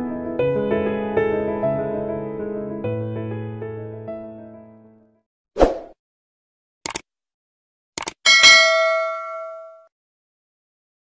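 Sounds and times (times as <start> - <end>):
click sound effects: 6.8 - 7.1, 8.0 - 8.2
bright bell ding: 8.3 - 9.9.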